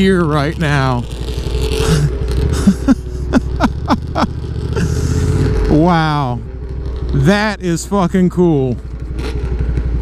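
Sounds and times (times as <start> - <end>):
motorcycle engine droning: 0.0 - 10.0
man laughing breathily: 1.8 - 5.4.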